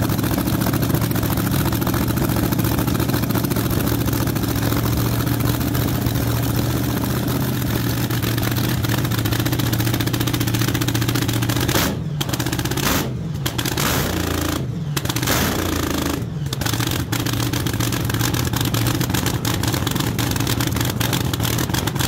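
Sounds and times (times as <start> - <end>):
dragster engine cackling: 0.0 - 22.0.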